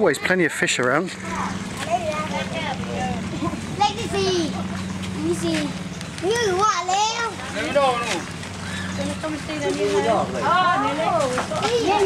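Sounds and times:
people and children talking: 0.0 - 12.0
steady low hum: 0.4 - 12.0.

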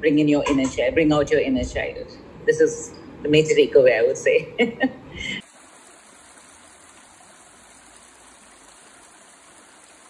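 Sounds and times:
stream rushing over stones: 5.4 - 10.0.

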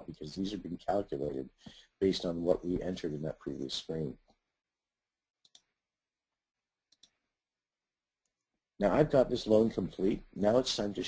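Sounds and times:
computer mouse clicks: 5.4 - 5.8, 6.9 - 7.2.

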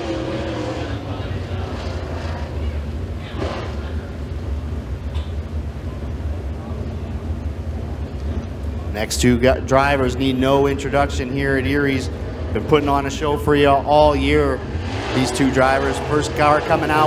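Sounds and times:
race car engine at high revs: 0.0 - 5.3, 12.0 - 17.0
low engine rumble: 0.0 - 17.0.

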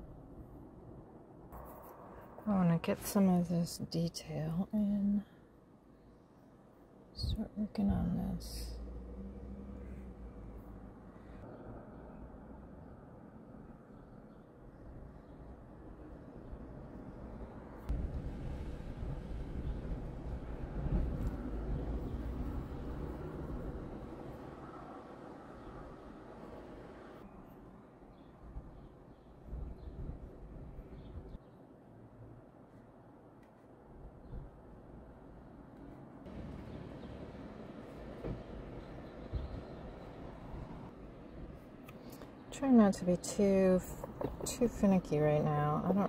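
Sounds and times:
passing traffic rumble: 7.8 - 14.0, 15.6 - 27.5, 35.1 - 46.0.

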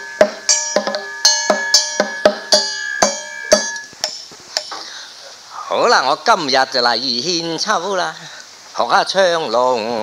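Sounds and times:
hand gong ringing: 0.0 - 4.2
drum strikes: 0.0 - 4.9.

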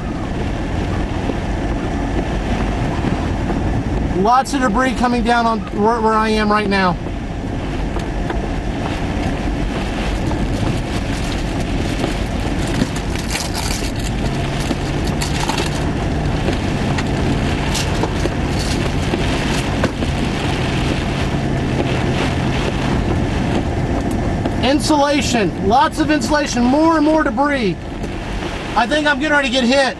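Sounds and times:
low hum: 0.0 - 28.8
rain and debris striking windshield: 0.0 - 29.9
wind and rain battering vehicle: 0.0 - 29.9.

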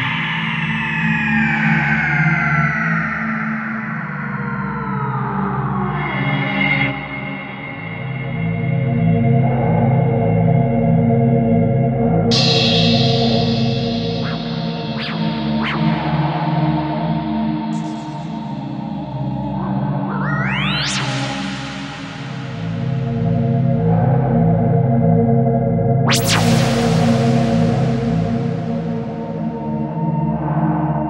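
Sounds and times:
pulsing bass line: 12.3 - 18.3, 26.0 - 29.5
gliding synth tones: 12.7 - 17.0.

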